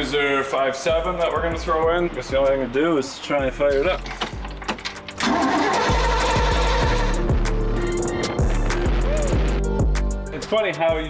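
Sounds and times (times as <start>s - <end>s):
boat engine starting and running: 3.9s - 9.8s
music with a steady beat: 6.2s - 11.0s.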